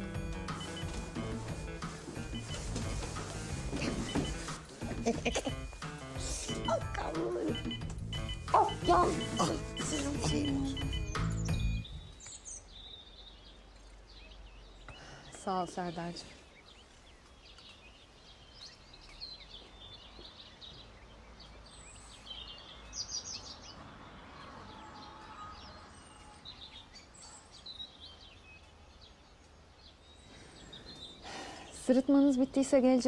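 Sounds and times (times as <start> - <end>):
small birds chirping: 3.4 - 33.0.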